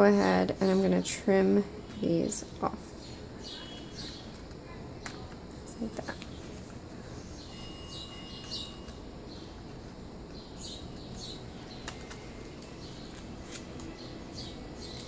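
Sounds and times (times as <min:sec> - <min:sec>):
small birds chirping: 0:00.2 - 0:15.0.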